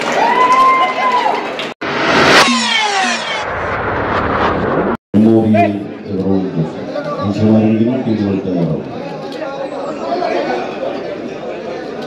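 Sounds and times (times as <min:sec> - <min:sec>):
whoosh with descending tones: 0:01.8 - 0:05.0.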